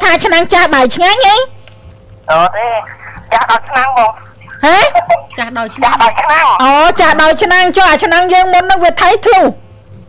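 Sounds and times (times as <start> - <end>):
person talking: 2.3 - 8.6.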